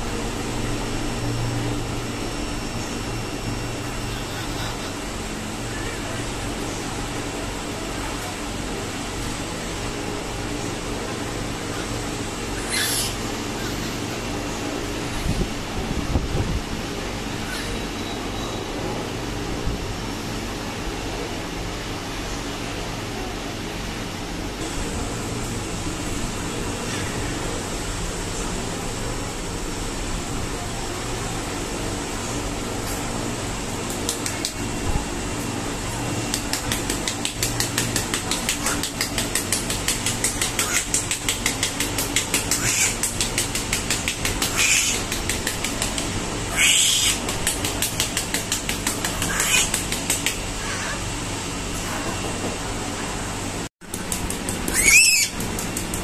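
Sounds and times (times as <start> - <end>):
steady background hum: 0.0 - 56.0
rapid rhythmic patting: 33.7 - 34.7, 36.2 - 46.5, 47.1 - 50.6, 53.8 - 56.0.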